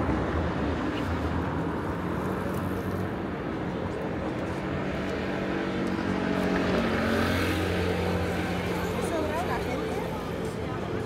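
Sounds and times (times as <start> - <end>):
people chattering: 3.5 - 11.0.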